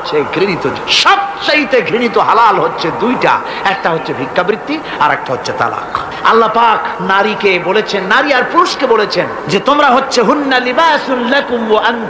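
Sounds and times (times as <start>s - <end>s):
man preaching: 0.0s - 12.0s.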